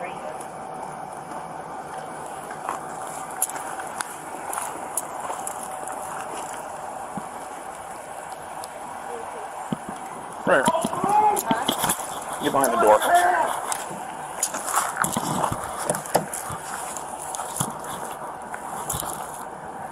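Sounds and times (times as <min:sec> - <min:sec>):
outdoor background noise: 0:00.0 - 0:19.9.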